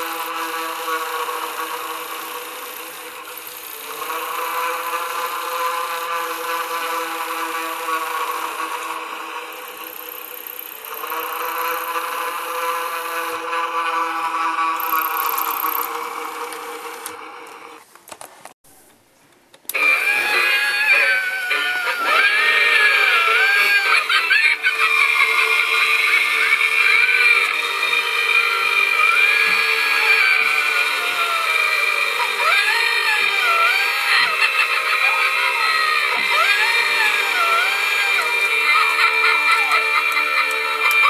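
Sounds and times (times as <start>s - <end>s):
eerie wavering sliding melody: 19.8s - 41.0s.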